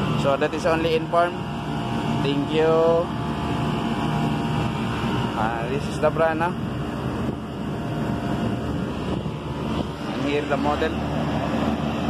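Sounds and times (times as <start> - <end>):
air-handling unit humming: 0.0 - 12.0.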